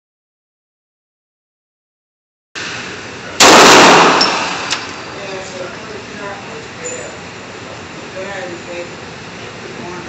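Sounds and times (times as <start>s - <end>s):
pistol shot ringing indoors: 3.4s - 5.0s.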